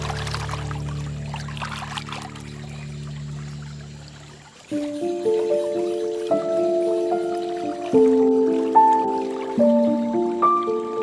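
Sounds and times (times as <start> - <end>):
water splashing and trickling: 0.0 - 11.0
background music chord: 4.7 - 11.0.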